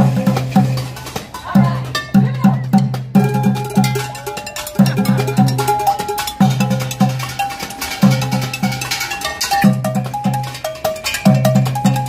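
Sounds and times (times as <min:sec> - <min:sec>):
drumsticks beating metal pots: 0:00.0 - 0:12.0.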